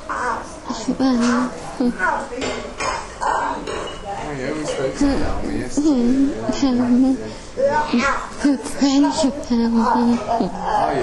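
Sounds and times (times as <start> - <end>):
crockery and cutlery clinking: 2.4 - 5.0.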